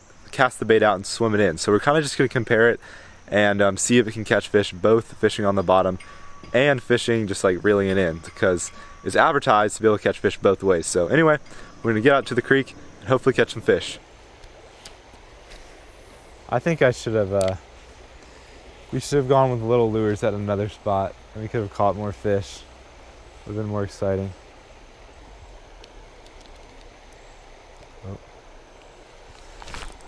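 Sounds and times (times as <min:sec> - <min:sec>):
shallow creek water rushing: 0:00.0 - 0:30.0
rustling noise: 0:14.6 - 0:16.2, 0:29.2 - 0:30.0
small clicks: 0:25.8 - 0:27.2.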